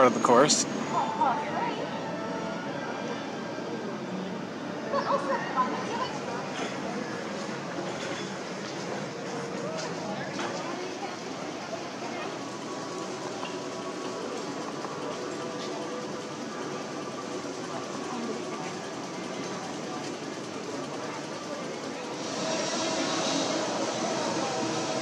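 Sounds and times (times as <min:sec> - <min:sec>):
indistinct distant voices: 0:00.0 - 0:25.0.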